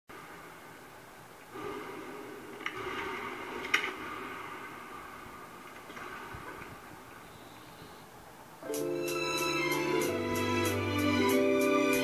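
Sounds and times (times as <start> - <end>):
faint room hum: 0.1 - 12.0.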